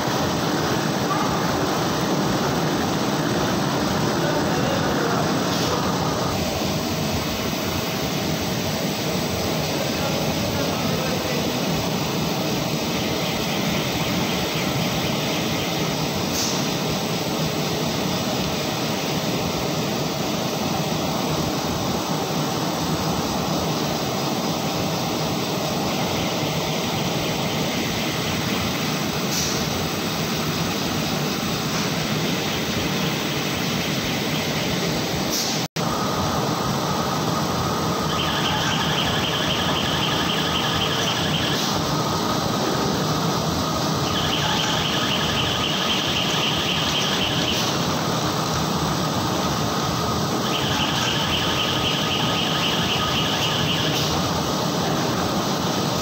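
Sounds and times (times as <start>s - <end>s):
printing press running: 0.0s - 35.2s, 35.8s - 56.0s
high machine whine: 0.0s - 56.0s.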